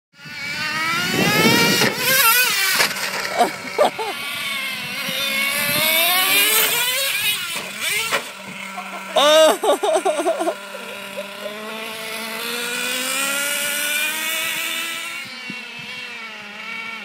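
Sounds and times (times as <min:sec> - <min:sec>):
nitro engine revving: 0:00.2 - 0:17.0.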